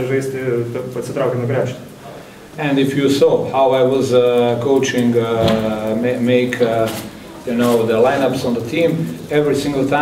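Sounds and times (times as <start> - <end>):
man speaking slowly: 0.0 - 10.0.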